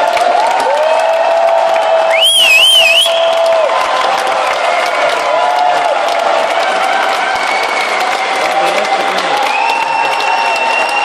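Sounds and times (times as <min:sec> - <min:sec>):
crowd cheering and clapping: 0:00.0 - 0:11.0.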